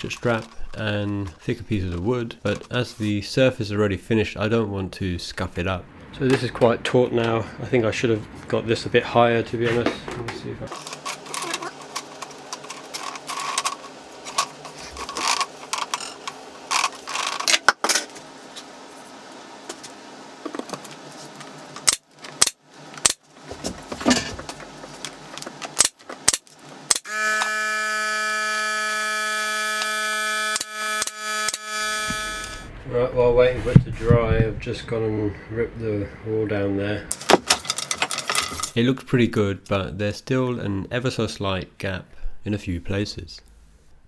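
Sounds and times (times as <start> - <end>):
steady pitched hum: 0.0 - 40.9.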